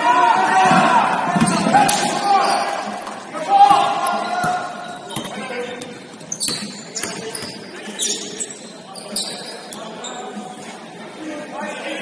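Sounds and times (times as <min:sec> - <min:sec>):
players calling out: 0:00.0 - 0:05.5.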